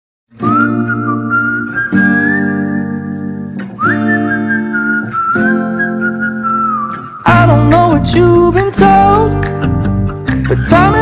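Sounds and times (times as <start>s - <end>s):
guitar chords: 0.3s - 11.0s
whistled melody: 0.4s - 8.4s
person singing: 7.2s - 9.6s, 10.3s - 11.0s.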